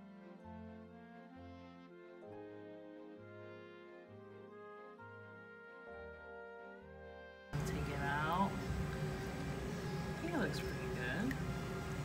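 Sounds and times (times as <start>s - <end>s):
faint hum: 7.6s - 12.0s.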